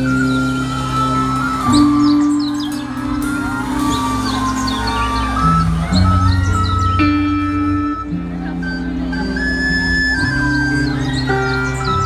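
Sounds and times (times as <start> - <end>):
keyboard and bass notes: 0.0 - 12.0.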